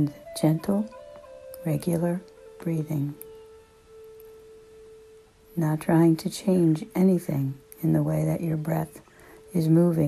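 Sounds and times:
sustained meditation music tone: 0.0 - 10.0.

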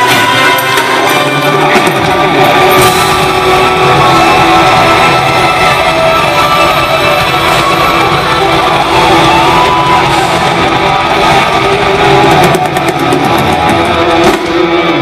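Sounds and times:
electric guitars: 0.0 - 15.0
live rock band: 0.0 - 15.0.

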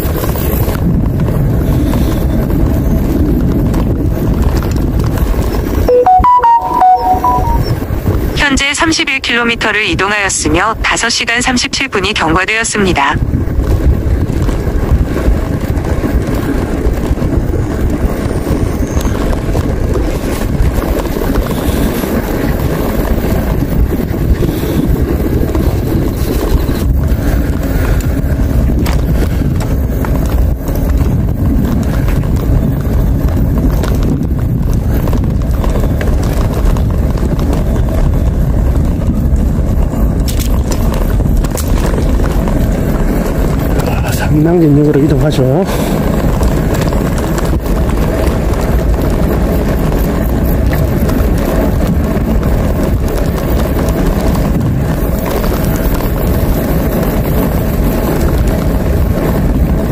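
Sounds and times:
bicycle tyres rumbling on pavement: 0.0 - 5.9, 13.2 - 59.9
wind rushing over microphone: 0.0 - 6.0, 7.2 - 59.9.

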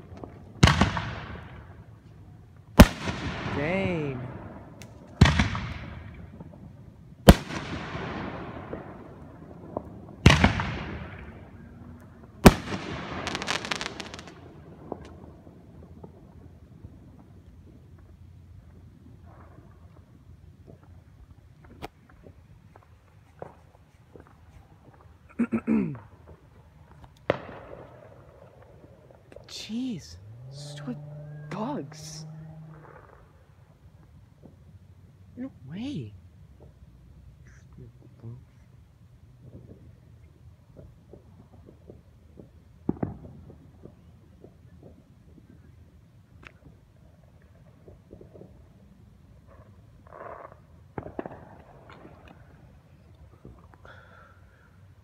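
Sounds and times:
firework bangs with echo: 0.0 - 1.8, 2.8 - 17.0, 27.2 - 28.9, 41.1 - 45.0, 50.9 - 52.6
rapid firework crackling: 2.8 - 25.4, 26.0 - 29.9, 40.7 - 55.0.

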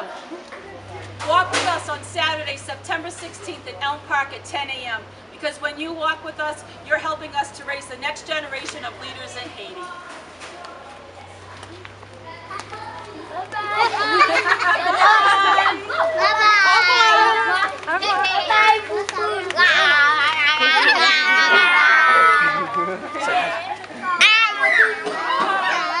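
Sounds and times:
children shouting excitedly: 12.3 - 26.0
sharp high-pitched shout: 24.2 - 26.0.

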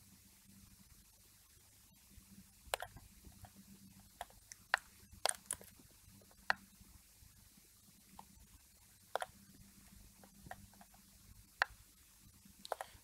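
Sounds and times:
low steady hum: 0.0 - 13.0
computer mouse clicking: 2.7 - 3.6, 4.2 - 6.6, 9.1 - 9.4, 10.2 - 11.0, 12.6 - 13.0.

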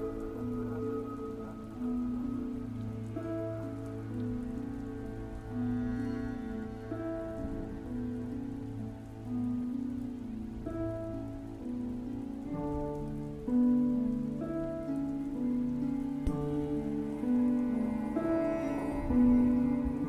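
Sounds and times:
falling rain: 0.0 - 20.0
soft piano and harp music: 0.0 - 20.0.

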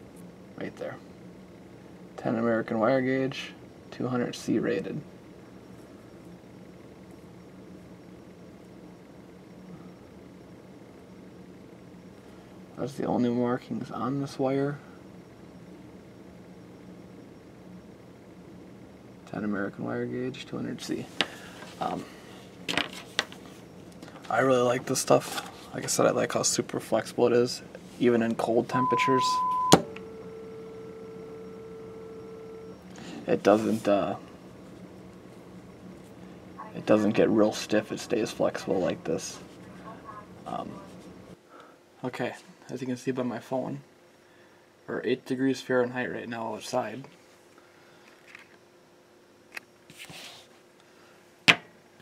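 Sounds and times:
low hum: 26.4 - 38.0
steady electronic tone: 28.6 - 32.9.

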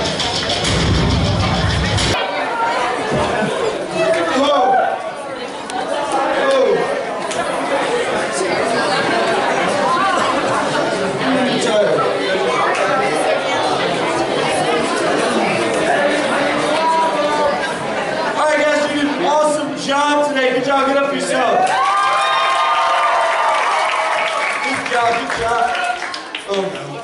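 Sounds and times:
murmur of overlapping voices: 0.0 - 27.0.

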